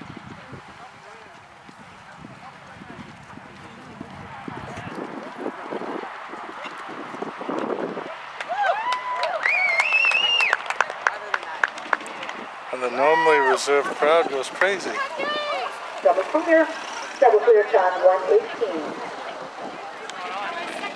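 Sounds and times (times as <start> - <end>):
people whooping and cheering: 8.0 - 14.0
people clapping: 8.3 - 12.9, 14.4 - 15.1.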